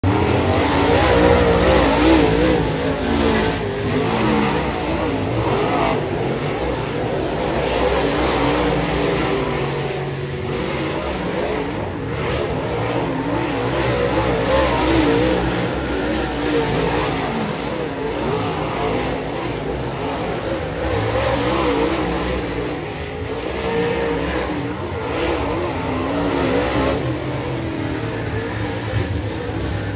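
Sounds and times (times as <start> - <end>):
race car engines revving: 0.0 - 29.9.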